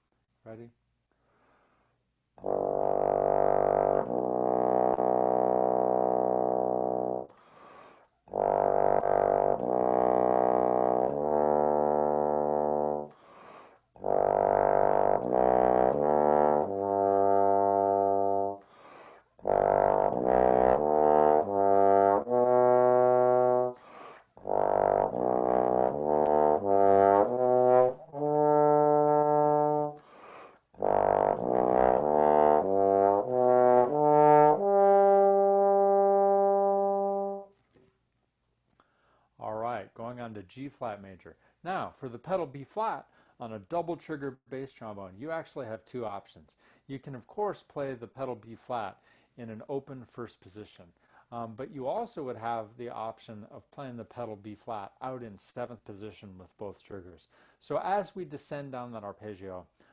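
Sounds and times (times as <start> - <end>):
player breathing: 1.1 - 2.0, 7.3 - 8.1, 13.1 - 13.9, 18.6 - 19.4, 23.8 - 24.4, 29.9 - 30.7, 38.8 - 39.4
bass trombone playing low notes: 2.4 - 7.3, 8.3 - 13.1, 14.0 - 18.6, 19.4 - 23.8, 24.4 - 30.0, 30.8 - 37.5.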